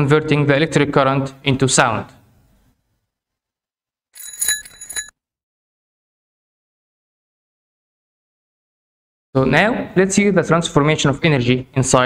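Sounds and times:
electric bell ringing: 4.2 - 5.1.

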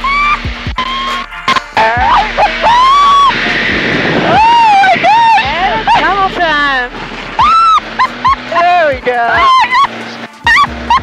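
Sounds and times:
aircraft engine drone: 0.0 - 11.0
person crying out and laughing: 1.8 - 3.4, 4.2 - 6.1, 7.4 - 8.6, 9.3 - 9.9, 10.5 - 11.0.

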